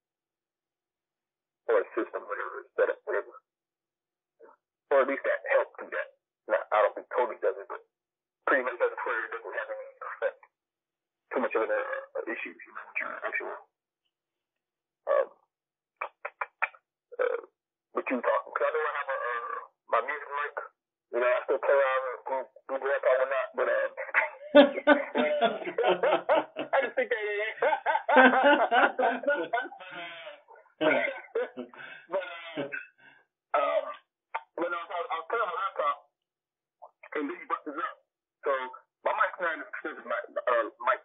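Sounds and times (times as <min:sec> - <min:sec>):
person's voice over phone line: 0:01.7 - 0:03.4, 0:04.9 - 0:07.8, 0:08.5 - 0:10.4, 0:11.3 - 0:13.7, 0:15.1 - 0:15.3, 0:17.2 - 0:33.0, 0:33.6 - 0:36.1, 0:36.8 - 0:41.0.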